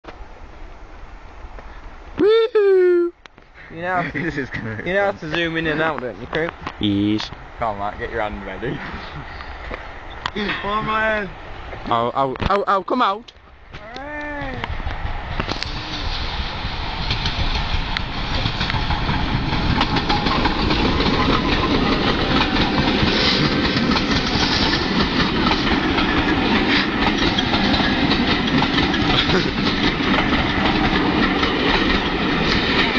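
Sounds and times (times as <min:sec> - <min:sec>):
train wheels rushing on rails: 0:03.9 - 0:12.1, 0:14.5 - 0:32.9.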